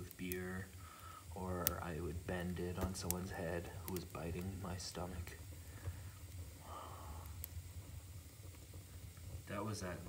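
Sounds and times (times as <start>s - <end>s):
low fire rumble: 0.0s - 10.0s
sharp fire crackle: 0.0s - 10.0s.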